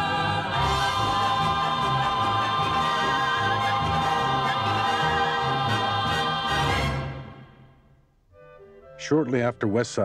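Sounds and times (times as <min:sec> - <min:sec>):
orchestral accompaniment: 0:00.0 - 0:07.7
choir singing held chords: 0:00.0 - 0:07.8.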